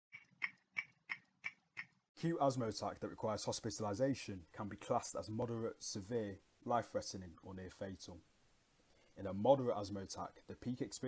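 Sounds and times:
clock ticking: 0.1 - 2.0.

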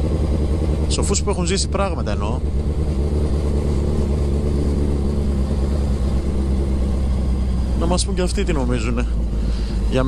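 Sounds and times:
motorcycle engine running: 0.0 - 10.0
road and air noise: 0.0 - 10.0.

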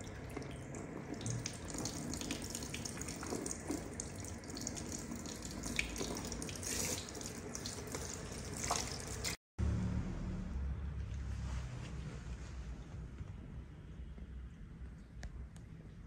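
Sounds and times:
shower sprayer water spray: 5.5 - 9.4.

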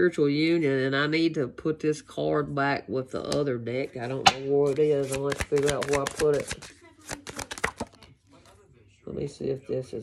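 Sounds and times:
cards being shuffled: 4.5 - 8.2.

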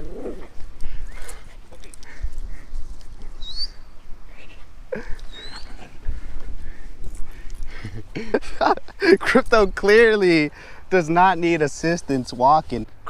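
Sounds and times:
dog whimpering: 5.3 - 5.9.

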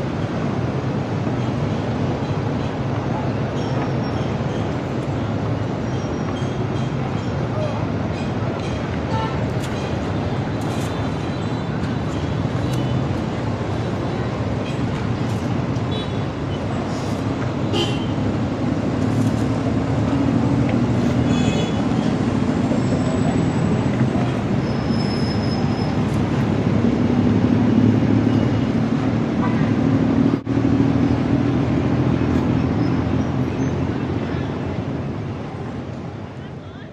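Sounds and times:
traffic engines and road noise: 0.0 - 36.9.

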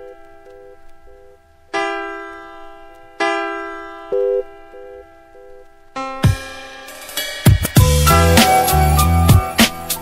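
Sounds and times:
drums: 6.2 - 10.0.

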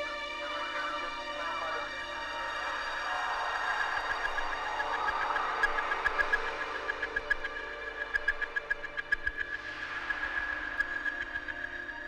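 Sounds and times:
droning synth texture: 0.0 - 12.0.

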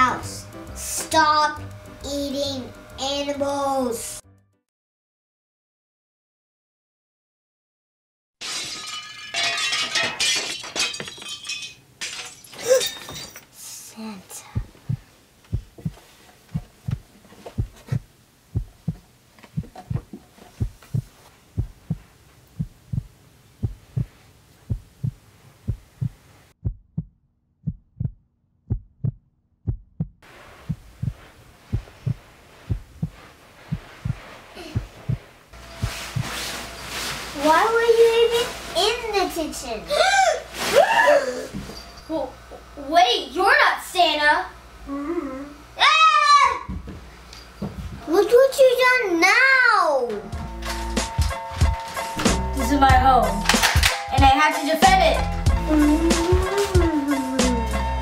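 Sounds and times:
heartbeat thumps: 14.5 - 36.4.

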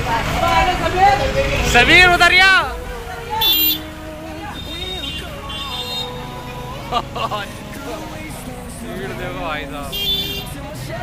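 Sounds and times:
bus engine idling: 0.0 - 11.0
people's voices: 0.0 - 11.0.

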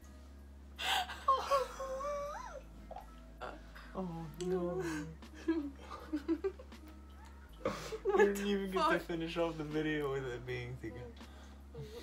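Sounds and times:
woman whimpering wail: 0.8 - 2.6.

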